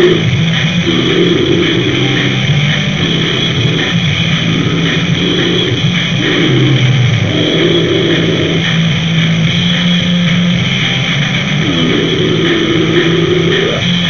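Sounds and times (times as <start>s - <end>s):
distorted noise music: 0.0s - 14.0s
steady low drone: 0.0s - 14.0s.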